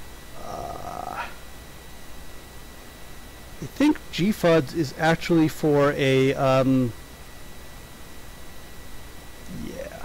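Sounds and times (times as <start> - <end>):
person sighing: 0.4 - 1.4.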